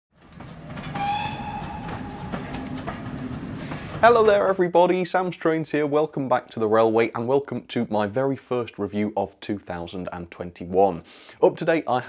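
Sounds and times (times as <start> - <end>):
wheels clicking over rail joints: 0.2 - 4.6
train rumbling past: 0.2 - 4.8
train whistle: 0.8 - 3.6.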